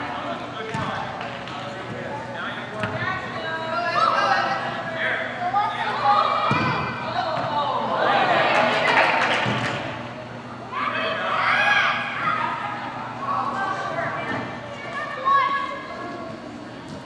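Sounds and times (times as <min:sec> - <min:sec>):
voices shouting in a hall: 0:02.6 - 0:16.8.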